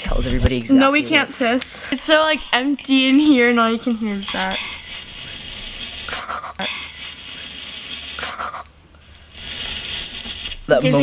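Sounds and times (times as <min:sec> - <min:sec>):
fingers rustling sequins: 0:02.0 - 0:11.0.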